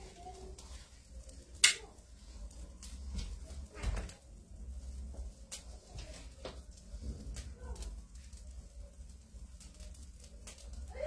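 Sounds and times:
flames burning low rumble: 0.0 - 11.0.

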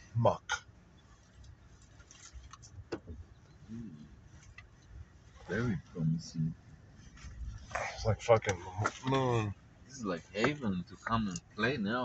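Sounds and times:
truck engine low rumble: 0.0 - 12.0.

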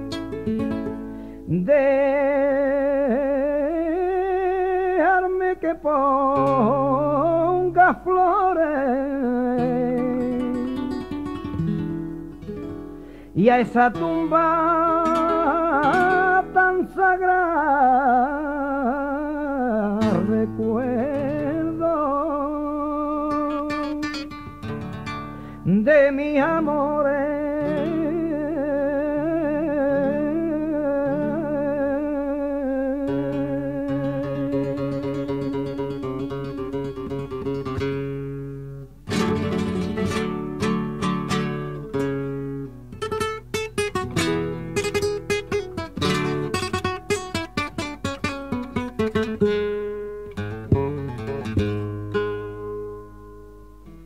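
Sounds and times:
acoustic guitar plucking and strumming: 0.0 - 54.0
man singing melismatic line: 1.5 - 11.1, 13.4 - 24.3, 25.6 - 37.3.

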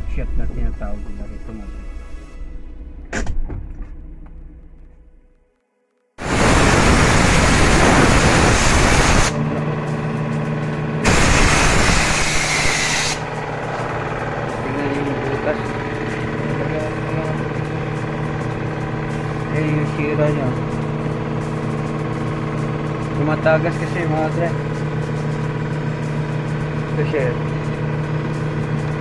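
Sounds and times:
compressed air hissing from blow gun: 6.2 - 9.4, 11.1 - 13.2
engine hum: 6.2 - 29.0.

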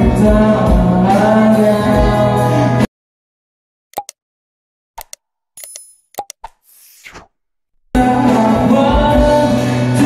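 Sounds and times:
live music: 0.0 - 2.8, 8.0 - 10.0
click and pop effects: 5.0 - 8.0.

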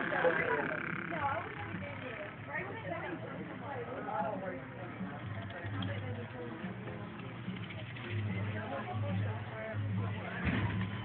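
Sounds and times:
faint music: 0.0 - 11.0
indistinct voices: 0.0 - 11.0.

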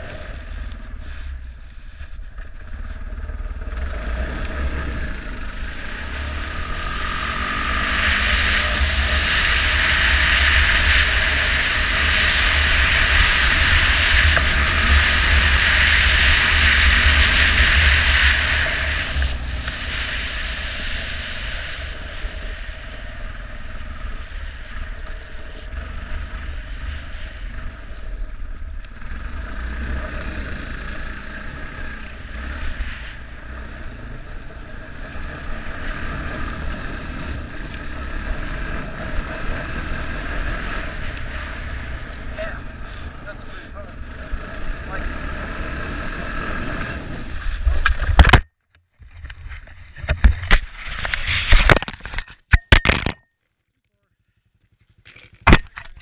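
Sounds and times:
atv engine running: 0.0 - 48.1, 54.2 - 56.0.

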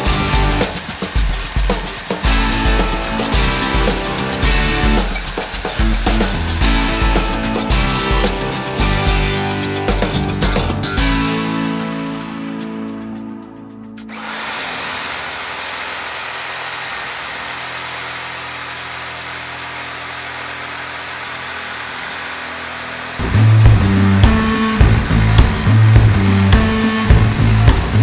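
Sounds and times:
reciprocating saw cutting log: 0.0 - 8.7, 14.1 - 28.0
loud rock music: 0.0 - 14.2, 23.2 - 28.0.

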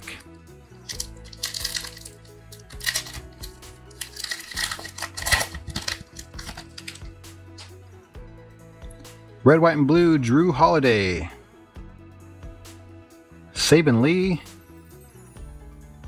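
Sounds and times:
soft background music: 0.0 - 16.0
foil wrapper crinkling and tearing: 0.9 - 7.0.

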